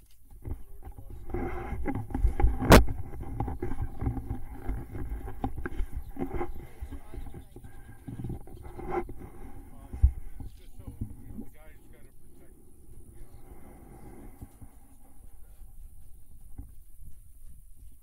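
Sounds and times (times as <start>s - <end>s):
airboat engine idling: 0.5s - 16.6s.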